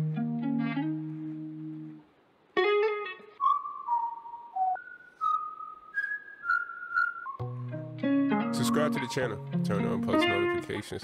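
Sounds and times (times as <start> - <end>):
high whistle-like melody: 3.4 - 7.7, 8.6 - 10.6
plucked electric guitar chord: 7.4 - 10.7.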